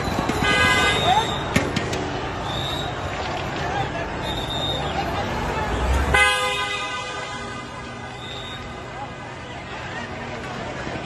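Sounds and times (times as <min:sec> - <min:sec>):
crowd shouting: 0:00.0 - 0:06.2
vehicle horn: 0:00.4 - 0:01.4, 0:06.1 - 0:08.5.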